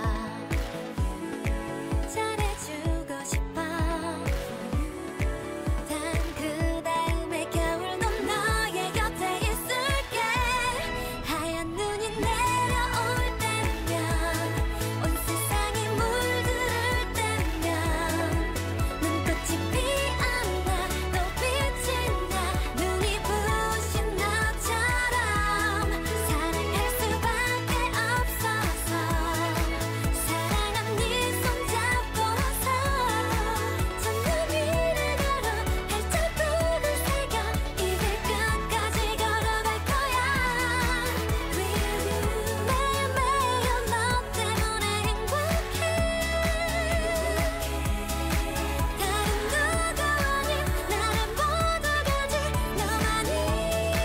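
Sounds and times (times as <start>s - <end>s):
steady beat and bass line: 0.0s - 11.0s, 12.2s - 54.0s
person singing: 0.0s - 54.0s.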